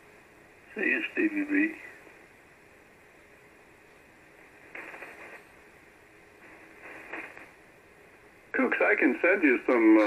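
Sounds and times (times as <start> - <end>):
radio static hiss: 0.0 - 2.8, 3.5 - 10.0.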